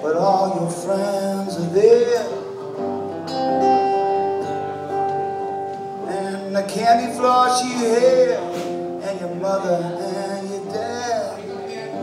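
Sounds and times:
acoustic guitar strumming chords: 0.0s - 12.0s.

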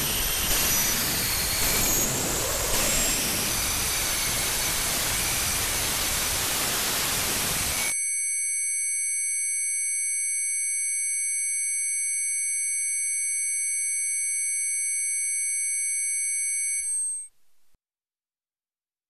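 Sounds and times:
high-pitched electronic sine tones: 0.0s - 17.3s.

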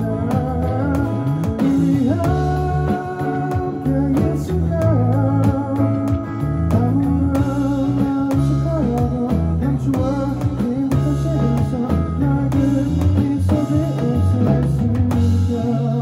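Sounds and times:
electric bass guitar: 0.0s - 16.0s
electronic drum beat: 0.0s - 16.0s
strummed acoustic guitar: 0.0s - 16.0s.

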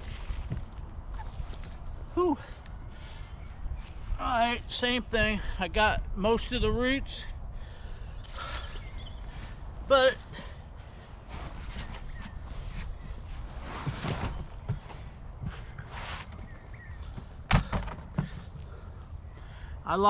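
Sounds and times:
hands rustling in soil: 0.0s - 4.8s, 8.2s - 17.2s.

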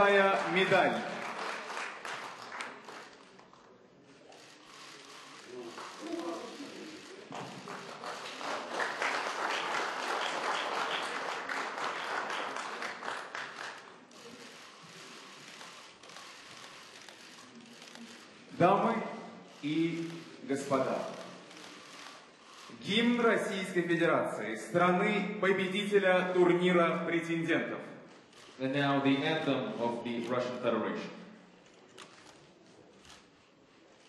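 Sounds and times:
audience applauding: 0.0s - 3.6s, 4.6s - 18.3s.

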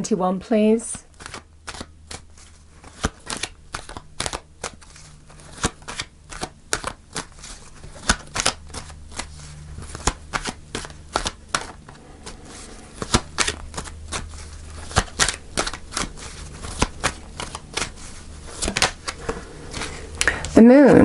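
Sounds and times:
cards being shuffled: 1.1s - 20.6s.

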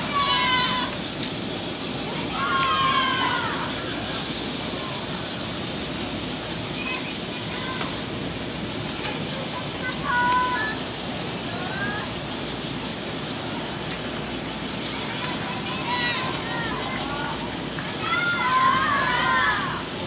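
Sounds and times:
faint distant voices calling: 0.0s - 20.0s
steady background rush: 0.0s - 20.0s.

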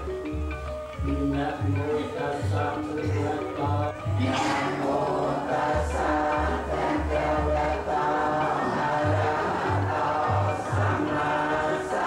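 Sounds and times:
men chanting in low voices: 1.3s - 12.0s.

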